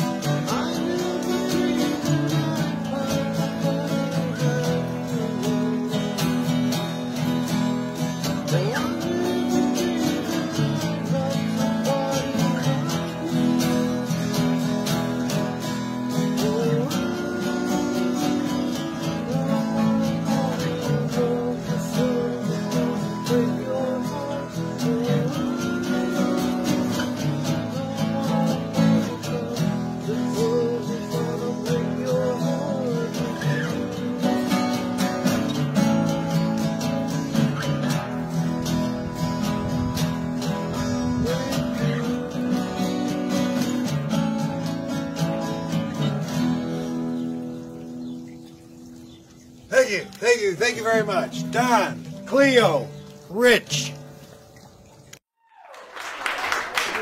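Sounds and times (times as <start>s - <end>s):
acoustic guitar strumming: 0.0s - 55.2s.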